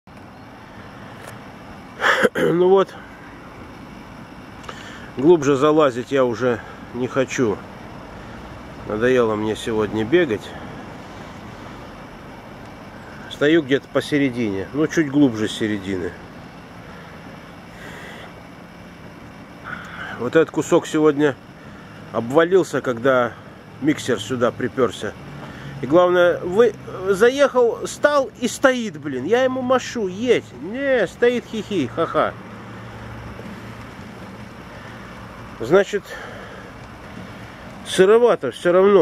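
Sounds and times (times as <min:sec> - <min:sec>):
pump humming: 0:00.2 - 0:09.4, 0:10.1 - 0:38.0.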